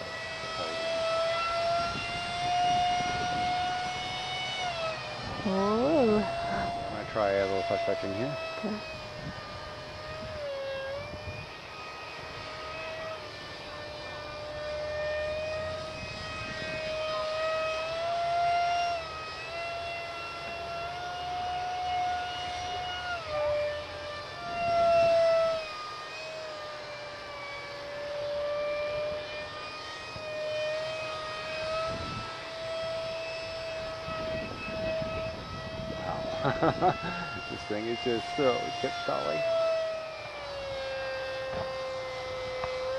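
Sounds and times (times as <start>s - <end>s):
electric motor and propeller whine: 0.0s - 42.9s.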